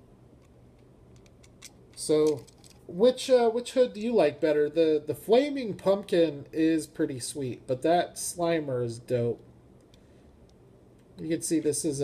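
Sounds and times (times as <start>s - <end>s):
toy cars clicking and tapping: 1.1s - 2.8s.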